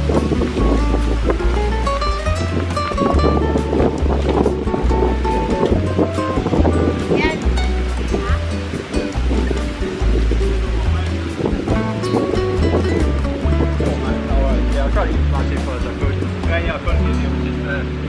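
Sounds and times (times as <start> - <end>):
background music with steady beat: 0.0 - 18.0.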